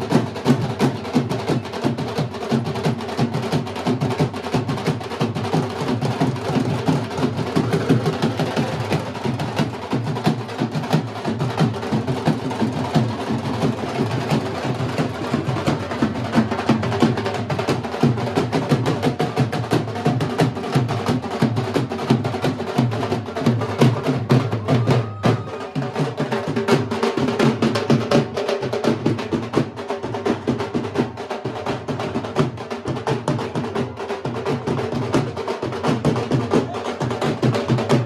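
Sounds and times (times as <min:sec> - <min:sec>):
barrel drums beaten rapidly: 0:00.0 - 0:38.0.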